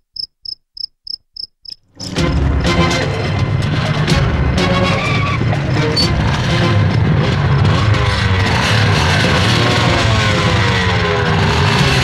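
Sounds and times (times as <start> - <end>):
cricket chirping: 0.0 - 1.8.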